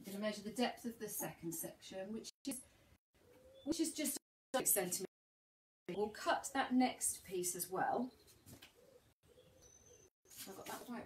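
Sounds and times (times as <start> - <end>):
faint low bird cooing: 3.2 - 3.7, 8.7 - 10.1.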